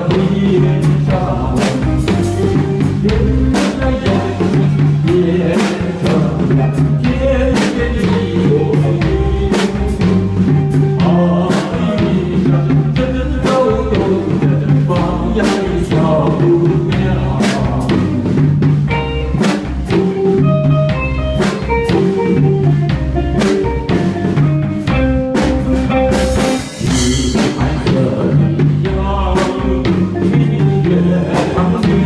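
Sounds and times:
drum beat: 0.0s - 32.0s
keyboard melody: 0.0s - 32.0s.

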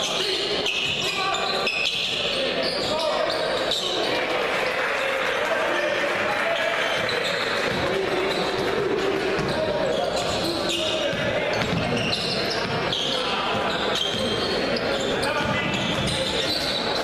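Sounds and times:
crowd noise: 0.0s - 17.0s
voices in a hall: 0.0s - 17.0s
basketball bouncing on hardwood floor: 9.4s - 9.6s, 11.1s - 12.0s.

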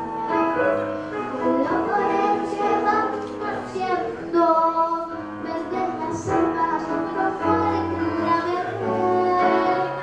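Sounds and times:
girl singing into a microphone: 0.0s - 10.0s
piano accompaniment: 0.0s - 10.0s.

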